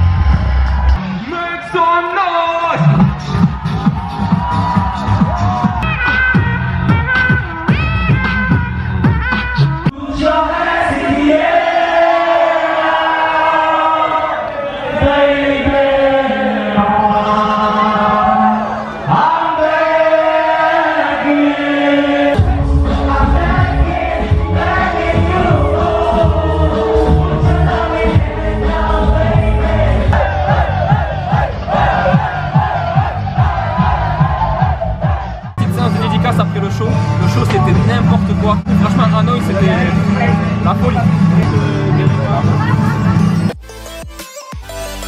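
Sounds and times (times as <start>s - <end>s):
crowd shouting and cheering: 0.0s - 43.6s
beatbox bass kicks: 2.8s - 10.0s.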